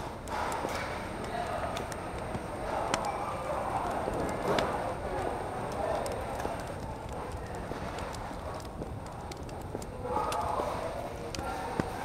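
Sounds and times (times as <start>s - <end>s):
low store rumble: 0.0s - 12.0s.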